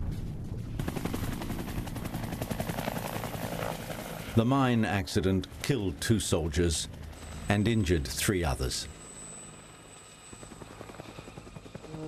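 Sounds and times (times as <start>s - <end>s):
helicopter rotor blades chopping: 0.2s - 12.0s.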